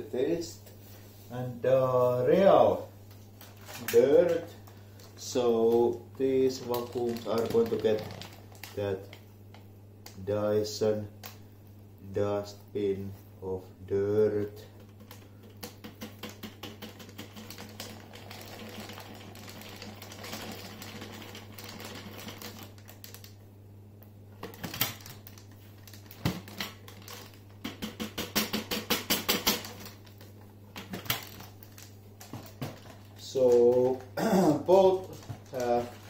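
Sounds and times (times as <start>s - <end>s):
steady low hum: 0.0s - 36.0s
plastic bin tapping and rattling: 6.6s - 9.2s, 14.8s - 23.3s, 24.4s - 36.0s.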